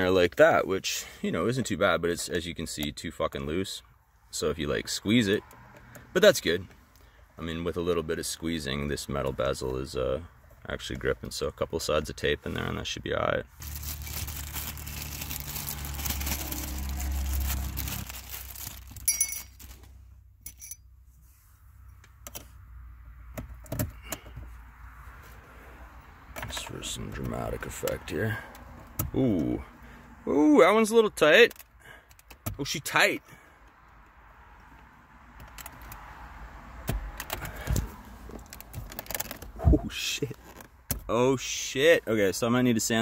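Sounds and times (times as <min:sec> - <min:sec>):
plastic bag crinkling: 0:13.6 - 0:20.0
rustle of handling: 0:13.6 - 0:20.1, 0:37.5 - 0:40.7
metal rings clinking: 0:19.0 - 0:19.6, 0:20.4 - 0:20.9.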